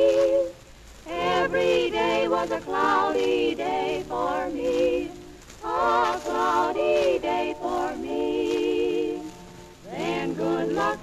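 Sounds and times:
female vocal trio singing in harmony: 0.0 - 11.0.

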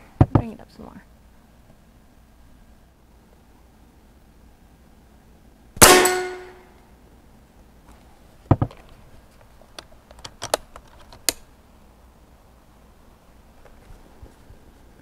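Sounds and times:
air rifle shot: 5.8 - 6.6
steel gong ringing: 5.8 - 6.7
knocks: 8.5 - 8.8.

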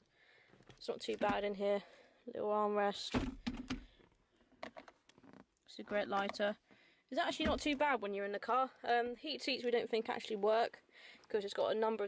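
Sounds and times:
hard plastic knocks and clicks: 3.1 - 5.4, 7.4 - 7.8.

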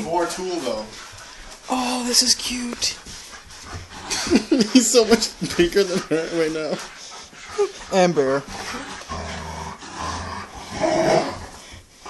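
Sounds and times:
dogs play-growling: 0.0 - 12.0
dog whining: 8.4 - 9.5, 10.1 - 11.5.

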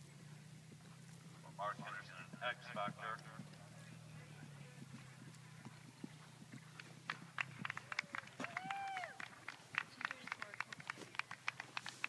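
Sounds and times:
horse galloping on grass: 0.0 - 12.0.

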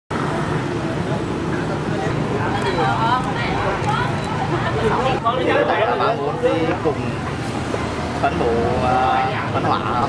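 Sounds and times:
road traffic: 0.1 - 10.0
people's voices: 0.2 - 10.0.

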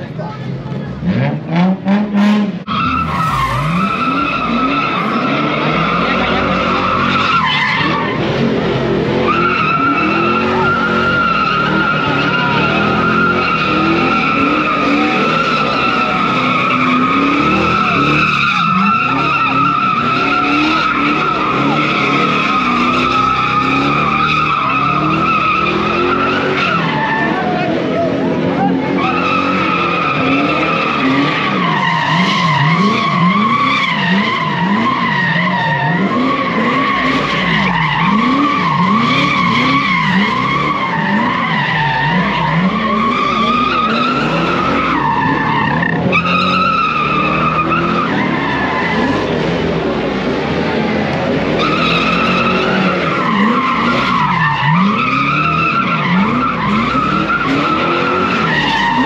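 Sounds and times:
car engine revving: 0.0 - 59.0
car tyres squealing: 0.0 - 59.0.

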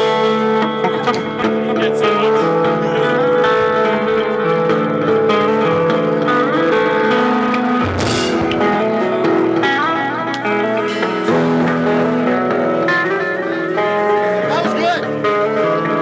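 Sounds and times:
band playing instrumental song: 0.0 - 16.0
sharp crash: 7.8 - 9.5.

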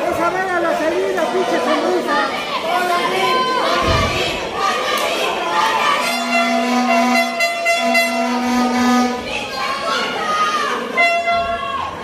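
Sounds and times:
crowd shouting: 0.0 - 12.0
horn blowing long notes: 5.9 - 9.4, 10.8 - 11.6.

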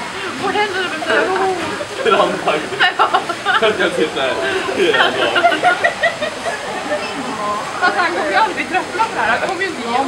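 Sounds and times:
faint background voices: 0.0 - 10.0
running water rushing: 0.0 - 10.0.

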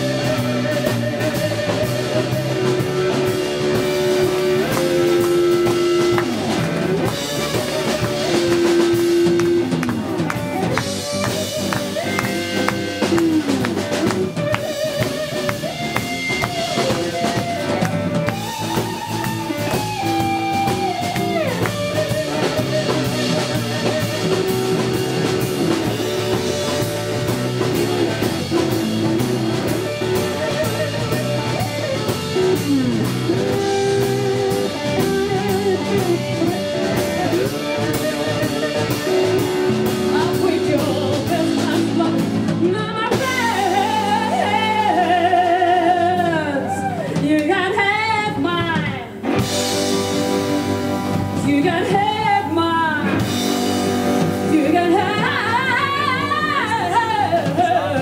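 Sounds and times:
lead electric guitar gliding notes: 0.0 - 47.2, 49.1 - 58.0
bass guitar: 0.0 - 58.0
drums: 0.0 - 58.0
second electric guitar: 0.0 - 58.0.

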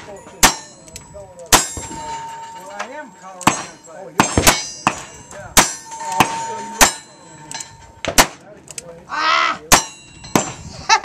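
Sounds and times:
steel target ringing: 0.1 - 8.3, 9.6 - 10.6.

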